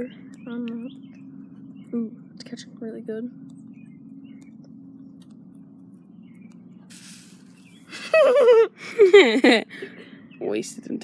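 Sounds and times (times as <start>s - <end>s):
faint low hum: 0.0s - 11.0s
loud laughter: 7.9s - 9.7s.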